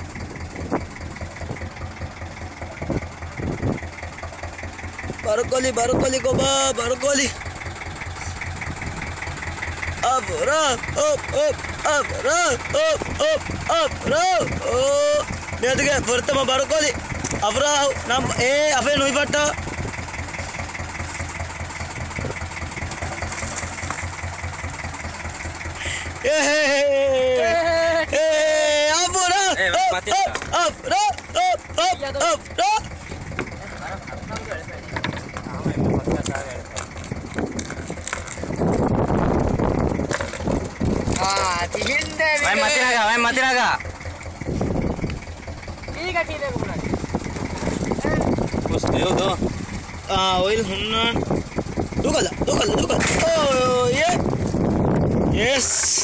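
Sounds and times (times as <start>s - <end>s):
boat engine idling: 0.0s - 56.0s
wind: 0.0s - 56.0s.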